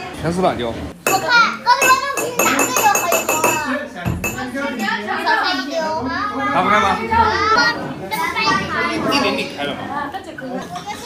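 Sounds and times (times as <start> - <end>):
children chattering and laughing: 1.0 - 11.0.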